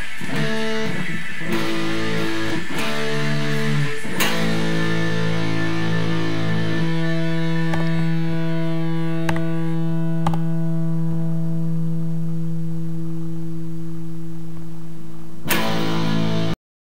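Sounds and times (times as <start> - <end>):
harsh burst of noise: 0.0 - 10.1
distorted electric guitar chord: 0.0 - 16.6.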